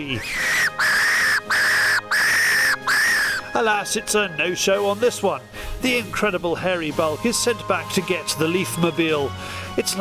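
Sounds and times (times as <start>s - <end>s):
fox calling: 0.0s - 3.6s.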